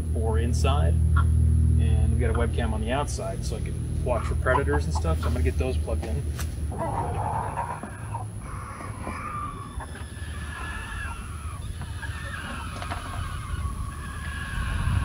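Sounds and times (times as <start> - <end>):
rooster crowing: 6.8 - 15.0.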